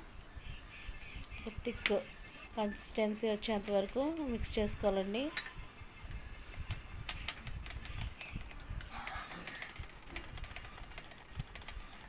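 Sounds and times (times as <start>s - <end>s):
wire whisk beating batter: 1.5s - 5.4s, 6.8s - 12.0s.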